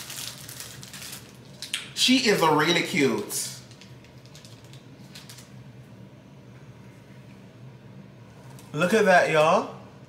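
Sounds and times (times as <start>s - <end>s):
plastic wrapping crinkling: 0.0s - 1.8s, 2.9s - 5.6s.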